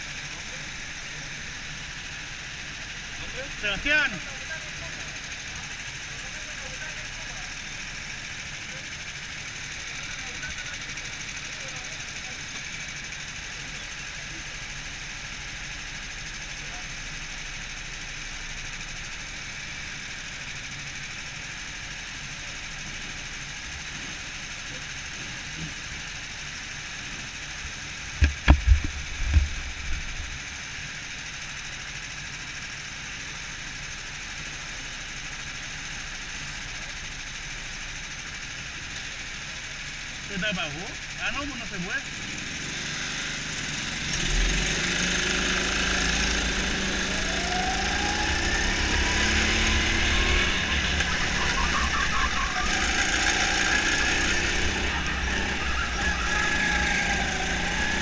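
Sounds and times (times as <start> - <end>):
go-kart engines idling: 0.0 - 58.0.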